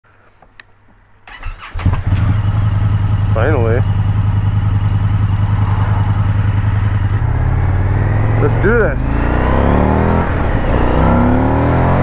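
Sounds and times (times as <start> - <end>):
engine cranking: 1.3 - 2.6
engine idling: 1.4 - 9.1.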